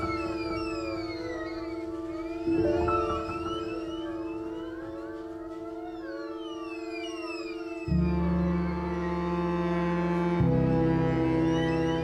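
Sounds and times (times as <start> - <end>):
sliding pitches: 0.0 - 12.0.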